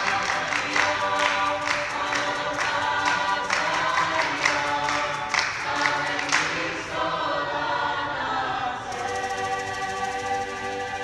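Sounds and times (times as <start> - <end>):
hand clap: 0.0 - 6.7
mixed choir singing: 0.0 - 11.0.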